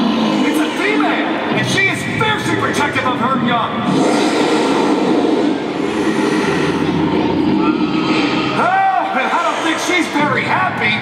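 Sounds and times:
dinosaur roar over loudspeakers: 3.4s - 9.7s.

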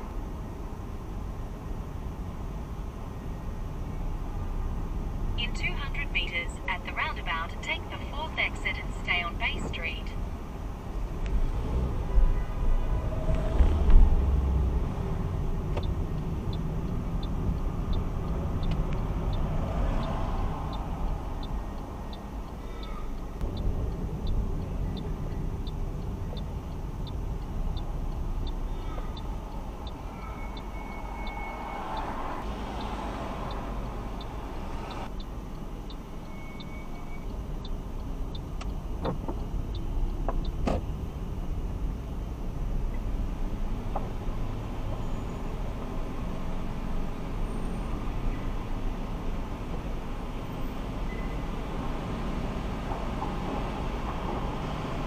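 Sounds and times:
car road and engine noise: 0.0s - 55.0s
turn indicator ticking: 2.1s - 12.4s, 13.3s - 55.0s.

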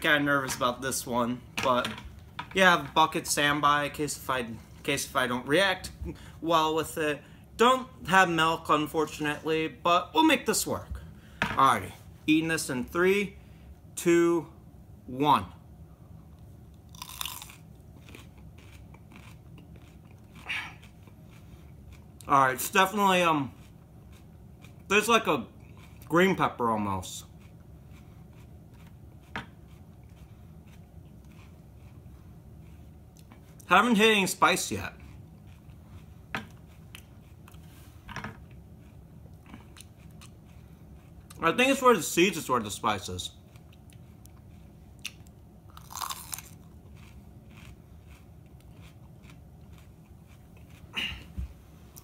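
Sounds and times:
chewing crunchy pepper: 16.7s - 37.8s, 38.4s - 51.3s
crisp crunch of biting pepper: 45.8s - 51.1s.

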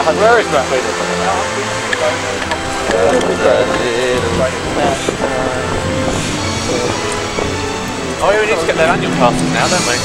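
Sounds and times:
group chatter and laughter: 0.0s - 10.0s.

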